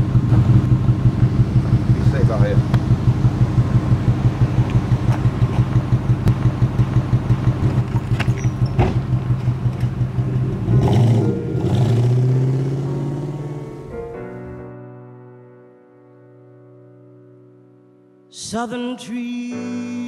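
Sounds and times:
car engine running: 0:00.0 - 0:14.1
car engine revving: 0:00.0 - 0:14.2.

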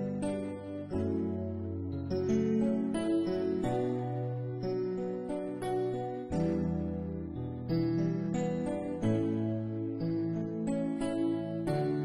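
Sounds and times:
slow gospel keyboard chords: 0:00.0 - 0:12.0.

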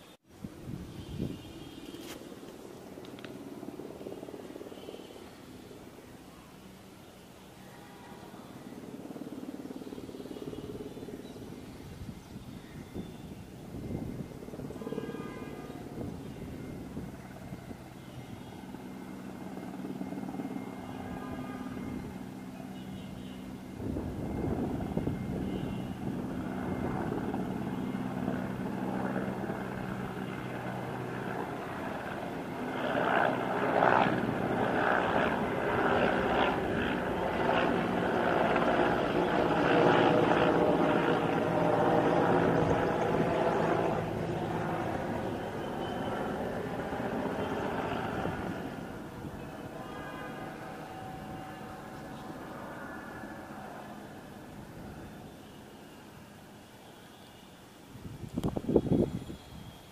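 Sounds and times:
helicopter rotor beating: 0:13.8 - 0:22.8, 0:23.4 - 0:55.8.

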